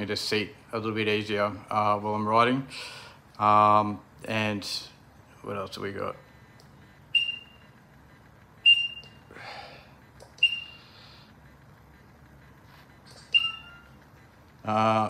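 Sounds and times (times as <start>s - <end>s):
short high beeps: 7.1s - 7.8s, 8.6s - 9.2s, 10.4s - 10.9s, 13.1s - 14.3s.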